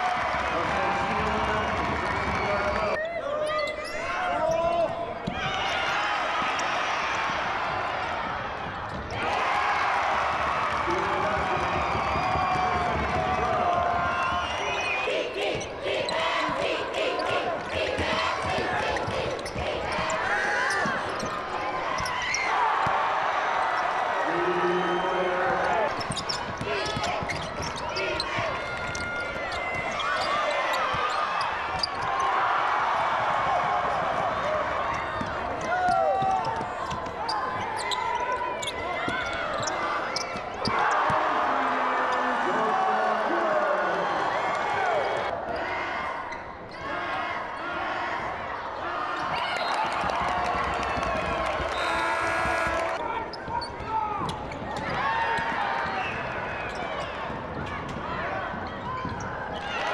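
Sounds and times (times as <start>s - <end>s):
crowd shouting and chattering: 0.0s - 59.9s.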